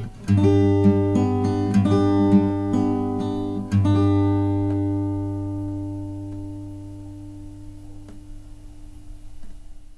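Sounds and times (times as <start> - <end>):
plucked guitar note: 0.0 - 9.5
acoustic guitar chord ringing: 0.0 - 9.9.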